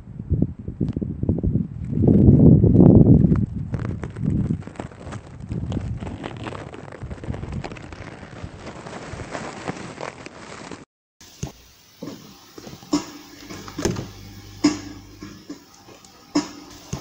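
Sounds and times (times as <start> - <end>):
grass and leaves rustling: 3.3 - 14.3.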